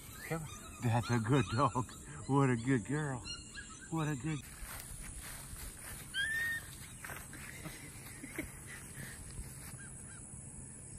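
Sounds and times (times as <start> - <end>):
high animal call: 5.9 - 6.9.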